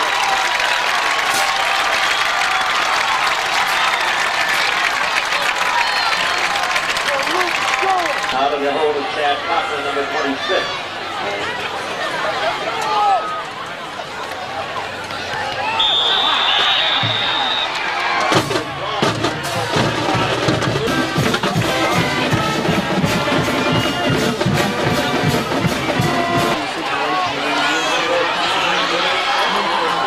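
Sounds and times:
crowd voices: 0.0 - 30.0
whistle blowing: 15.8 - 18.0
band playing with drums: 18.2 - 26.7.

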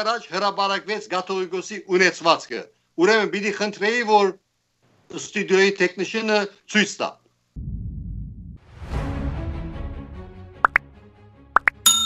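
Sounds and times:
rising pop sound effects: 10.6 - 10.9, 11.6 - 12.0.

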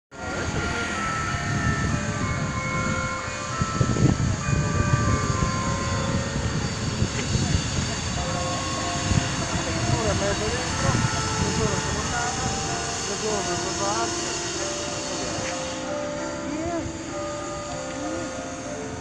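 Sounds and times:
traffic noise: 0.1 - 19.0
voices of passers-by: 0.1 - 19.0.

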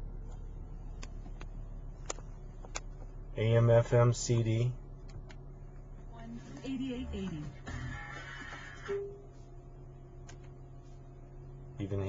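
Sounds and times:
steady low hum: 0.0 - 12.0
music from car radio: 6.2 - 9.4.

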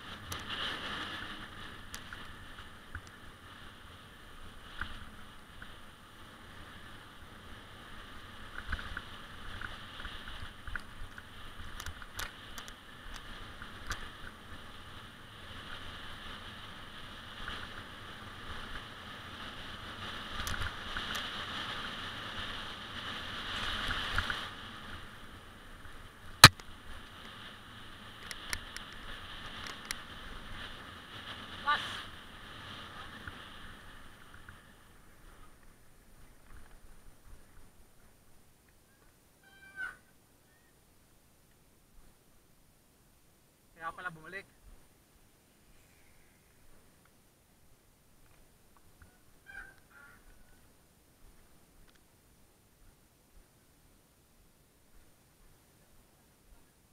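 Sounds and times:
riding noise on dirt trail: 0.0 - 56.9
sharp crack: 26.4 - 26.7.

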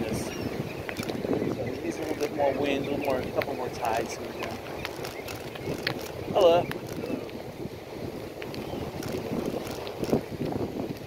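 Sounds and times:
wind buffeting microphone: 0.0 - 11.0
faint clicks: 0.8 - 1.2, 4.3 - 7.4.

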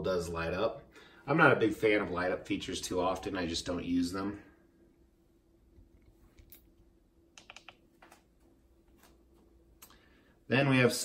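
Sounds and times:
faint room hum: 0.0 - 11.0
soft clicks: 6.4 - 8.3.

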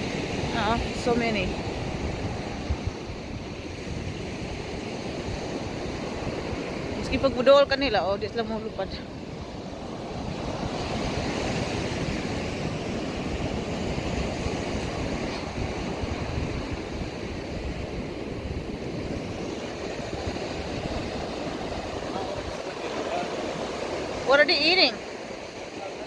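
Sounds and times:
wind buffeting microphone: 0.0 - 25.8
ocean surf breaking: 0.0 - 26.0.

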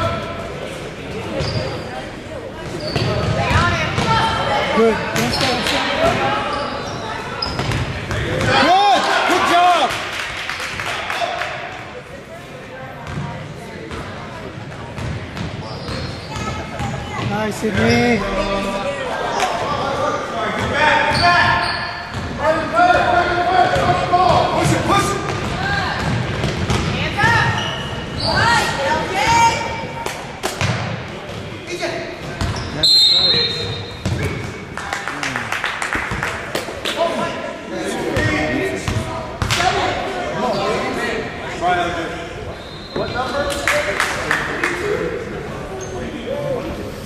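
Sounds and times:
people shouting in a gym: 2.6 - 10.0, 18.4 - 30.2.

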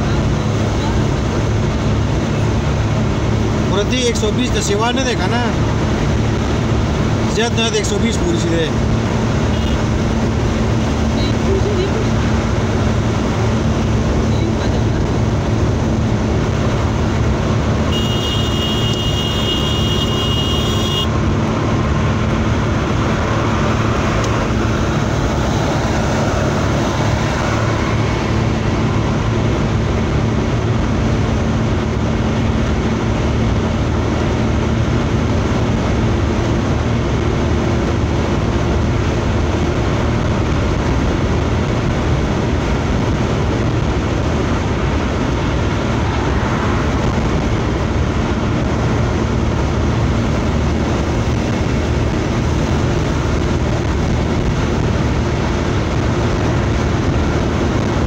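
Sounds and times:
car cabin road and engine noise: 0.0 - 58.0.

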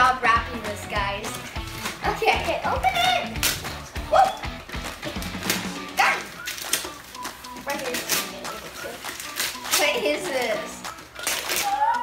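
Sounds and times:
wrapping paper tearing and crumpling: 1.6 - 4.4, 5.2 - 12.0.

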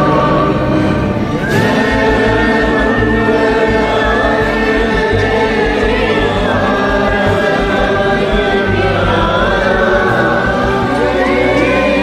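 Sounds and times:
backing track: 0.0 - 12.0
choir singing: 0.0 - 12.0.

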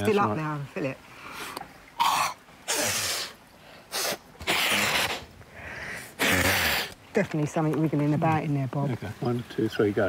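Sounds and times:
woman snorting through nose: 6.2 - 6.9.

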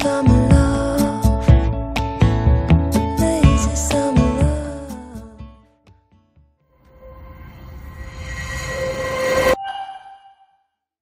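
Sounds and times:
rising whoosh with held tones: 6.9 - 10.4
short ringing tone: 6.9 - 10.7.

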